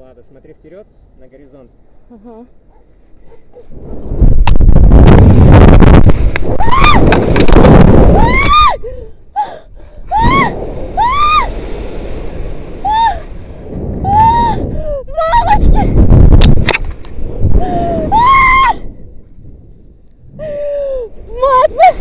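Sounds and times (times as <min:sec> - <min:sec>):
wind buffeting microphone: 0:03.1 - 0:22.0
woman screaming: 0:06.5 - 0:07.1, 0:08.1 - 0:11.5, 0:12.8 - 0:13.3, 0:14.0 - 0:16.0, 0:17.6 - 0:18.9, 0:20.6 - 0:22.0.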